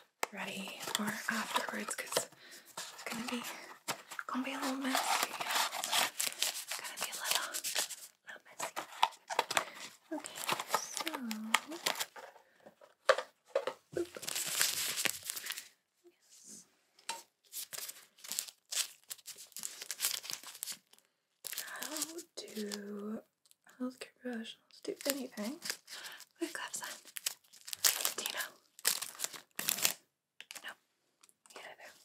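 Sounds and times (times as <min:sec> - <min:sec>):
paper wrappers crinkling and tearing: 0:00.4 - 0:12.3, 0:14.0 - 0:15.7, 0:17.4 - 0:22.9, 0:24.9 - 0:30.6.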